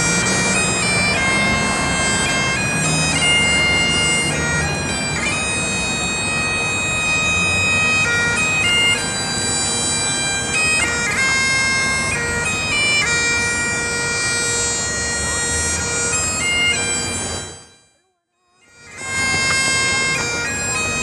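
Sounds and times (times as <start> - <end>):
bagpipe tune with drone: 0.0 - 21.0.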